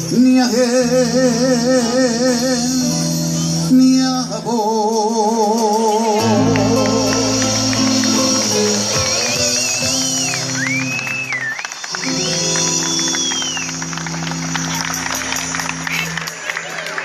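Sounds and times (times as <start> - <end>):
held bass chords: 0.0 - 11.4, 12.0 - 16.4
guitar: 0.0 - 17.0.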